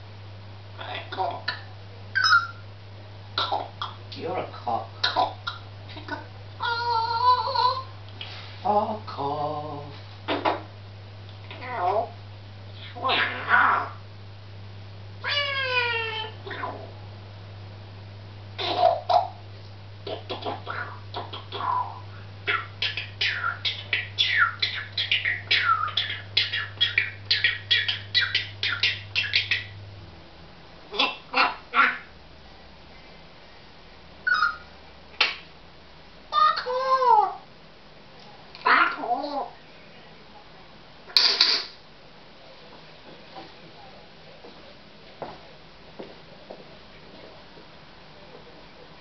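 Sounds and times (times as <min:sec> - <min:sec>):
parrot calling: 0:00.8 - 0:02.7, 0:03.4 - 0:08.0, 0:11.4 - 0:12.2, 0:12.8 - 0:14.0, 0:15.2 - 0:16.9, 0:18.6 - 0:19.4, 0:20.0 - 0:29.8, 0:30.9 - 0:32.2, 0:34.2 - 0:35.3, 0:36.3 - 0:37.5, 0:38.6 - 0:39.6, 0:41.1 - 0:41.8.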